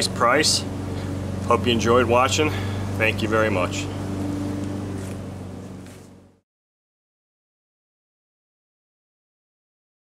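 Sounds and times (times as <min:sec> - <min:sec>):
low background hum: 0:00.0 - 0:06.4.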